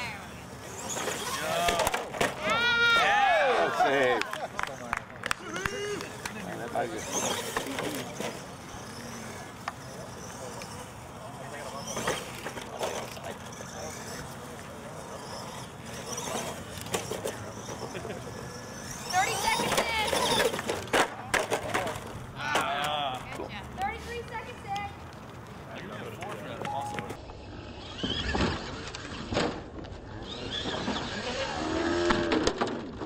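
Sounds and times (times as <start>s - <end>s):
toy truck motor and tyres: 0.0s - 25.5s, 26.2s - 33.0s
people talking: 1.2s - 25.0s, 25.6s - 27.2s.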